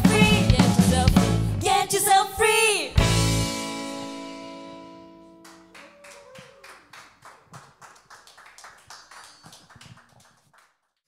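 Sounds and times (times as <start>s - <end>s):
live band chord ringing: 3.0s - 5.8s
faint sparse clapping: 5.4s - 10.9s.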